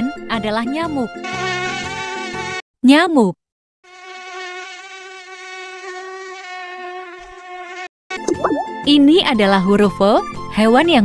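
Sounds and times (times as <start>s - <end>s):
mosquito wing whine: 1.2s - 2.6s, 3.9s - 7.9s.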